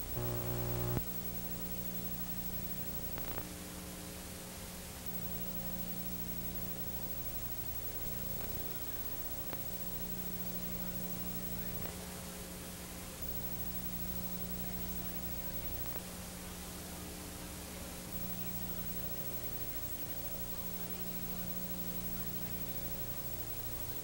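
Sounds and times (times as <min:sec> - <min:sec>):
low mains hum: 0:00.0 - 0:24.0
tape hiss: 0:00.0 - 0:24.0.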